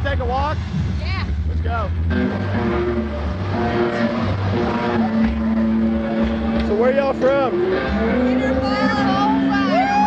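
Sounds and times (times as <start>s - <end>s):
live rock music: 0.0s - 10.0s
low drone: 0.4s - 9.9s.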